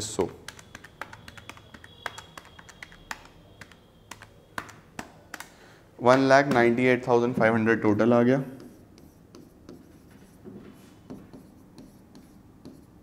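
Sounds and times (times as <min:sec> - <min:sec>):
calculator keys clicking: 0:00.2 - 0:05.6.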